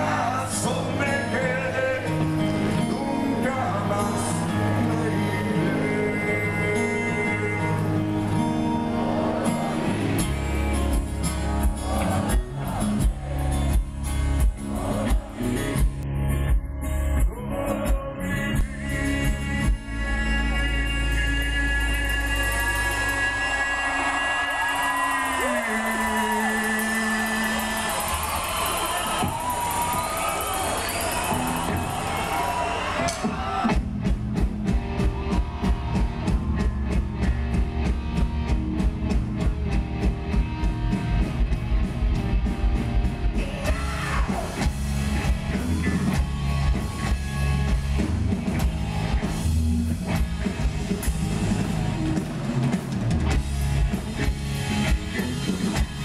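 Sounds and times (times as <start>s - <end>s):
live rock band: 0.0s - 56.0s
drums and bass beat: 9.6s - 56.0s.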